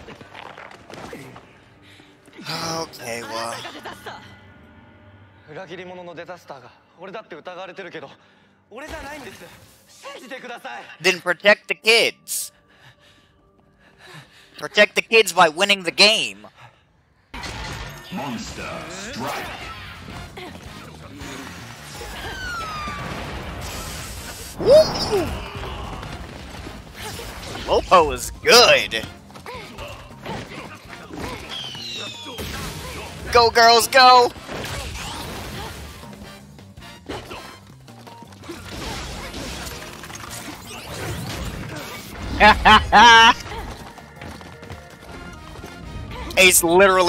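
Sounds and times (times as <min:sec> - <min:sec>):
background music: 0:00.0 - 0:47.0
person shouting: 0:24.6 - 0:25.4, 0:42.6 - 0:43.4
falling whistle-like tone: 0:31.5 - 0:32.4.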